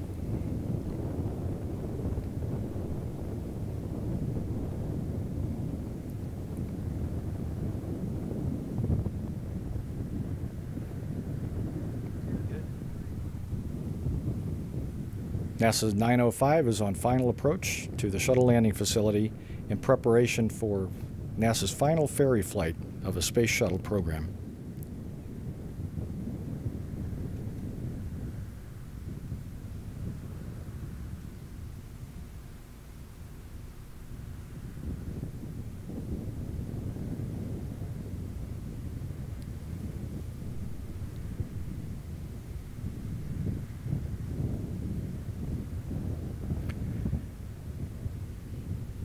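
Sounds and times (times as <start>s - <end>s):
distant jet engines rumbling: 0.0s - 49.0s
wind buffeting microphone: 0.0s - 49.0s.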